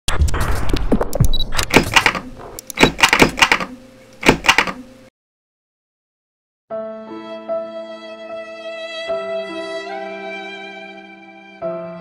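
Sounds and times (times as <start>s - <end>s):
clicks: 0.7s - 4.8s.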